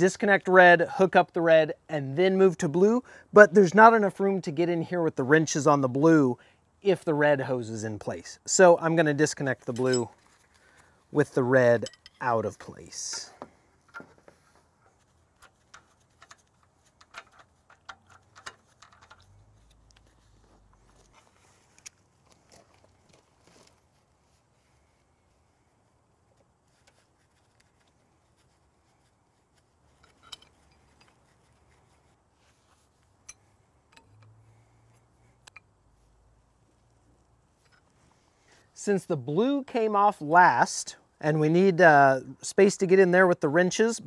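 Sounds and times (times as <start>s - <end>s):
wrenches clinking on metal fittings: 9.6s - 10.4s, 11.7s - 13.3s, 30.0s - 31.2s.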